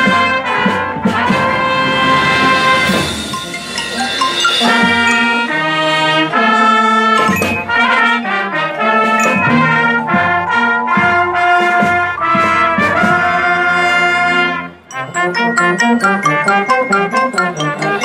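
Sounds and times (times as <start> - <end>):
percussion strikes: 0.0 - 14.1, 14.9 - 18.0
brass chords: 0.0 - 18.0.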